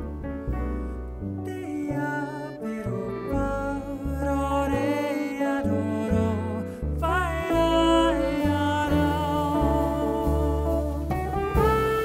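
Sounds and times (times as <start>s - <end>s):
archtop guitar: 0.0s - 12.0s
double bass: 0.0s - 12.0s
man singing long note: 1.4s - 12.0s.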